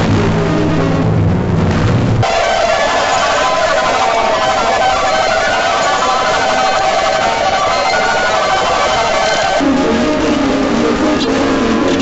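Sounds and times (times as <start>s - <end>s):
dense music of overlapping tones: 0.0s - 12.0s.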